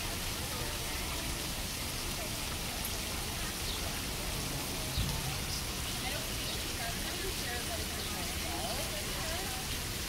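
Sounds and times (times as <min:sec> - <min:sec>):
fountain water splashing into pool: 0:00.0 - 0:10.0.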